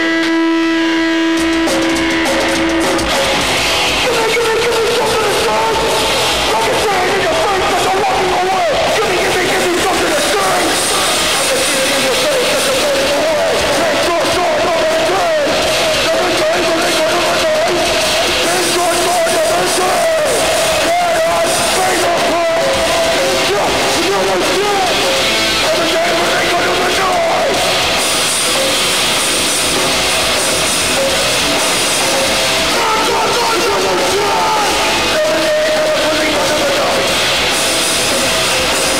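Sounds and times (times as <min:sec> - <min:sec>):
distorted electric guitars: 0:00.0 - 0:38.9
drums: 0:00.0 - 0:38.9
shouted vocals: 0:02.4 - 0:29.1, 0:30.9 - 0:38.9.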